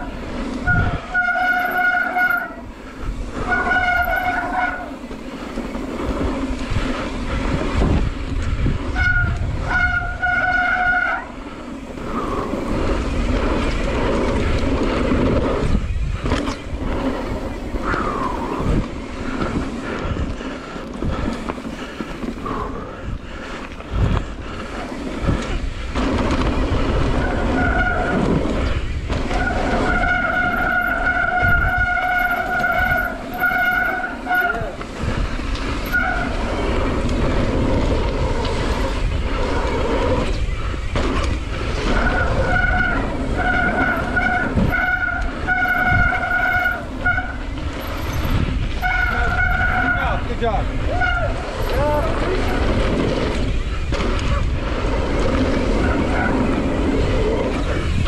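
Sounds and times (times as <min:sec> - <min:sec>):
wind: 0:00.0 - 0:58.0
high-pitched brake squeal: 0:00.7 - 0:02.6, 0:03.4 - 0:05.0, 0:29.3 - 0:34.7, 0:42.0 - 0:50.2.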